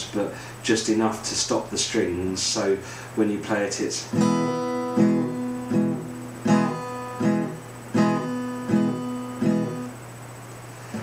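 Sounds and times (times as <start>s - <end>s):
acoustic guitar strummed and choked: 4.1s - 10.0s.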